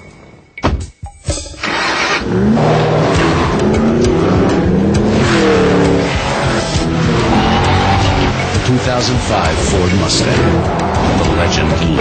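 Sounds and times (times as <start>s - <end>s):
music: 0.0s - 12.0s
car engine revving hard: 1.6s - 12.0s.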